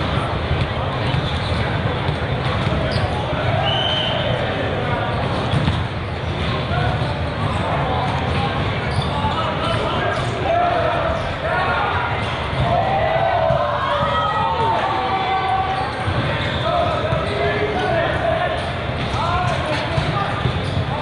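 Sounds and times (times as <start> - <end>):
babble of voices: 0.0 - 21.0.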